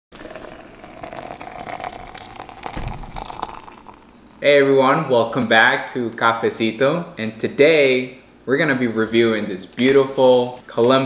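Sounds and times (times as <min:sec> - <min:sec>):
hot water pouring and splashing: 0:00.1 - 0:04.2.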